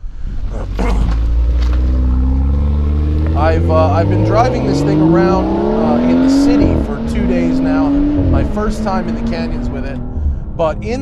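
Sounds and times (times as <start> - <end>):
car engine accelerating: 0.4 - 11.0.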